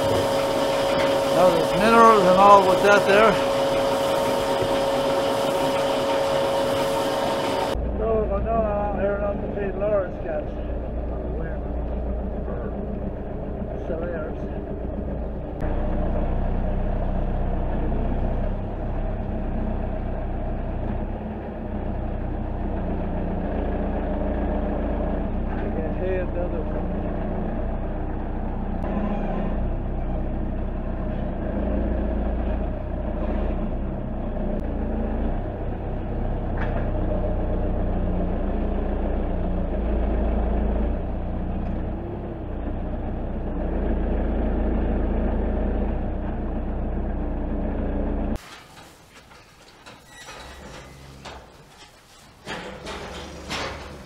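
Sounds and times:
diesel engine running: 0:00.0 - 0:48.4.

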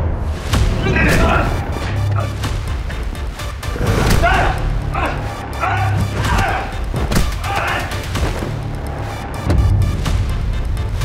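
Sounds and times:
dramatic music with pulsing bass: 0:00.0 - 0:11.0
thuds of blows: 0:00.5 - 0:08.8
men grunting and crying out: 0:00.8 - 0:02.9, 0:03.6 - 0:08.5.

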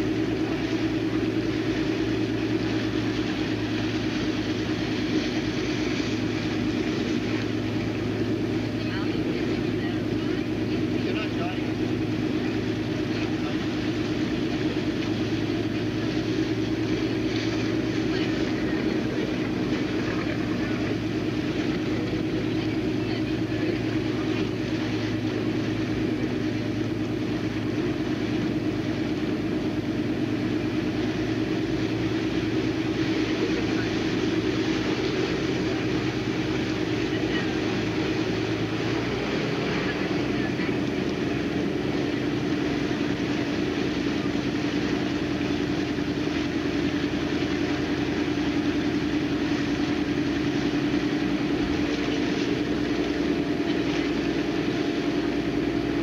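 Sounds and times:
motorboat engine droning: 0:00.0 - 0:56.0.

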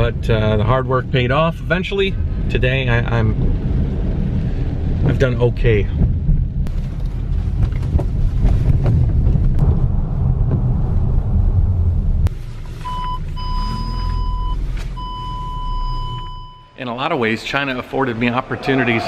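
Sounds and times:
car engine and road rumble: 0:00.0 - 0:19.0
parking sensor beeps: 0:12.8 - 0:16.9.

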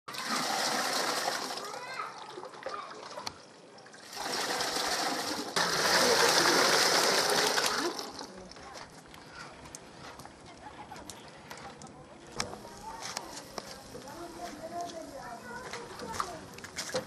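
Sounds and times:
liquid pouring and splashing: 0:00.1 - 0:08.7.

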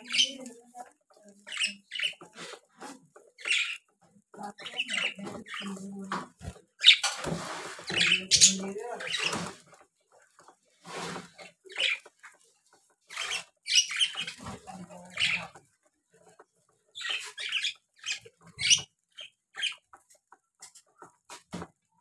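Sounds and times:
birds pecking seed in metal bowl: 0:00.0 - 0:22.0.

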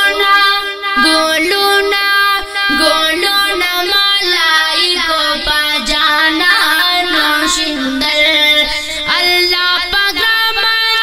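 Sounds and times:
boy singing solo: 0:00.0 - 0:11.0.

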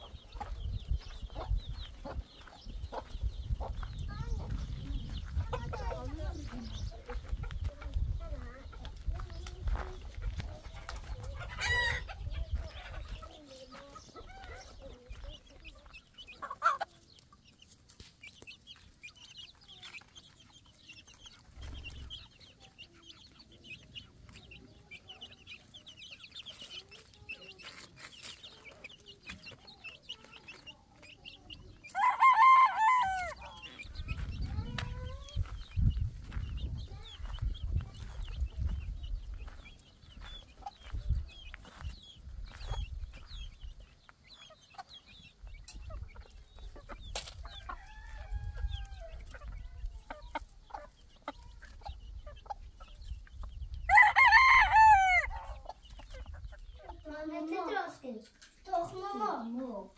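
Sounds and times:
low wind rumble on microphone: 0:00.0 - 0:13.3, 0:33.2 - 0:44.0, 0:45.4 - 0:50.4, 0:51.4 - 0:57.1
chicks peeping: 0:00.0 - 0:59.9
hen clucking: 0:00.0 - 0:59.9
rooster crowing: 0:31.9 - 0:33.6, 0:47.8 - 0:49.1, 0:53.9 - 0:55.4.

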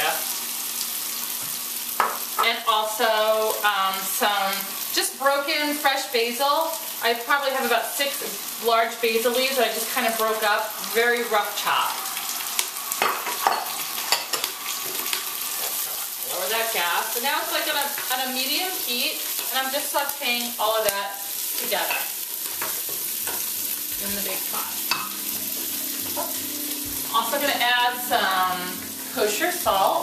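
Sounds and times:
garlic sizzling in oil: 0:00.0 - 0:30.0.

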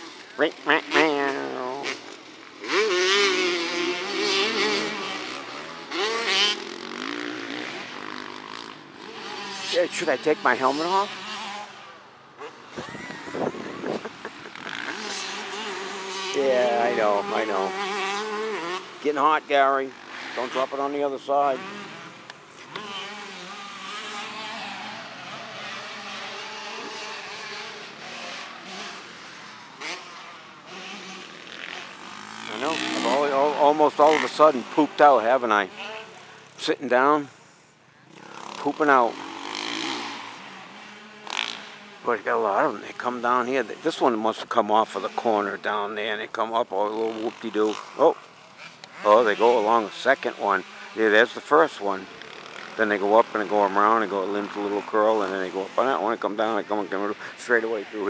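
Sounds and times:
distant dirt bike engines: 0:00.0 - 0:58.0.

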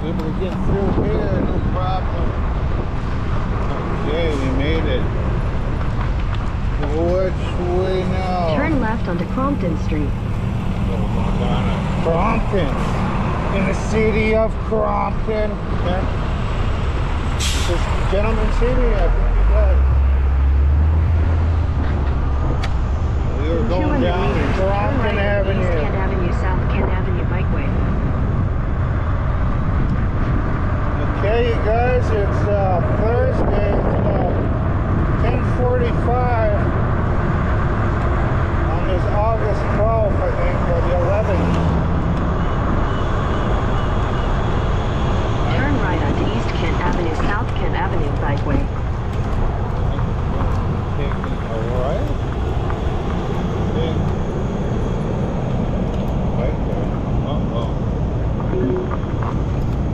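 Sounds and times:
indistinct voices: 0:00.0 - 0:06.0, 0:06.7 - 0:28.5, 0:30.8 - 0:34.5, 0:38.6 - 0:59.9
heavy truck engine rumble: 0:00.0 - 0:59.9
road noise: 0:00.0 - 0:59.9
steady wind noise: 0:00.0 - 0:59.9.

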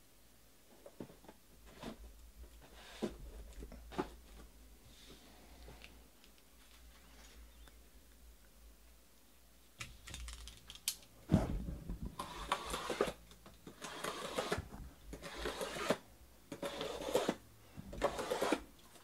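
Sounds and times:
cardboard boxes rustling and scraping: 0:00.8 - 0:04.5.

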